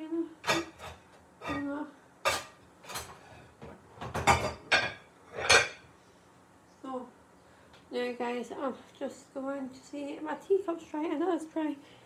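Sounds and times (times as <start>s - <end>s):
dishes and cutlery clattering: 0.4s - 5.9s.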